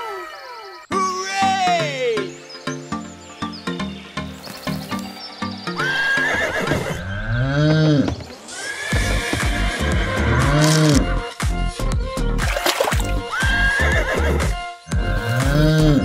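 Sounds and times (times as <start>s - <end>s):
background music: 0.8s - 16.0s
horse whinny: 5.8s - 10.6s, 13.3s - 14.5s.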